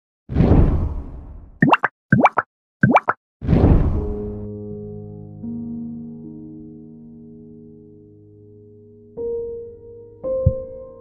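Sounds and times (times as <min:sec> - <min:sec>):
pops rising in pitch: 0:01.6 - 0:03.2
music: 0:03.9 - 0:11.0.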